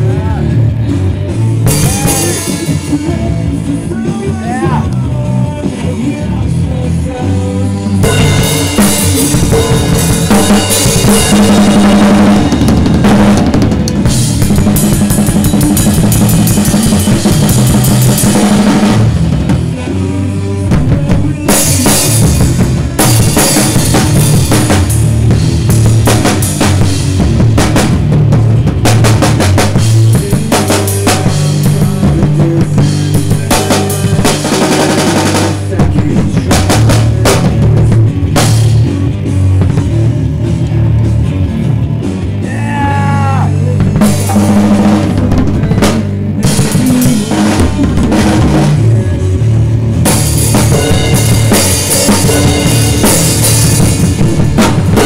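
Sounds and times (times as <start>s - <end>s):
loud band music: 0.0s - 55.0s
rock drum kit played hard: 0.0s - 55.0s.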